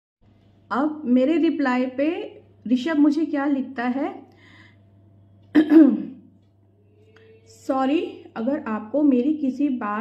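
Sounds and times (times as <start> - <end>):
woman clearing her throat: 5.5 - 6.2.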